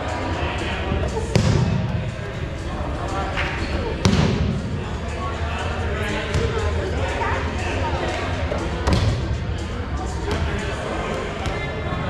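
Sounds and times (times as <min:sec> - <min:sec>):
players chattering: 0:00.0 - 0:12.0
dodgeballs smacking: 0:01.3 - 0:02.0, 0:04.0 - 0:04.6, 0:08.8 - 0:09.2.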